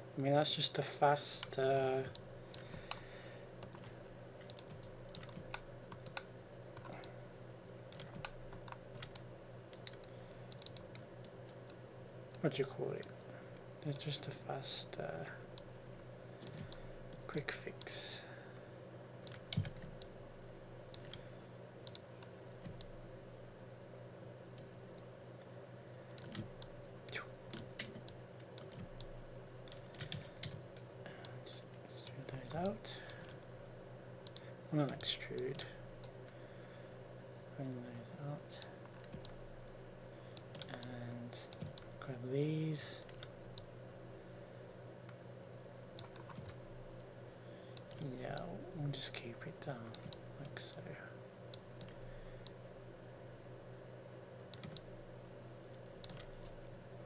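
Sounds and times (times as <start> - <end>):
low electrical hum: 0.0 - 57.0
keyboard and mouse clicking: 3.6 - 7.1, 7.9 - 12.4, 19.2 - 20.2, 21.8 - 23.0, 26.2 - 30.6, 46.0 - 46.6, 49.9 - 50.6, 54.5 - 54.9, 56.0 - 56.6.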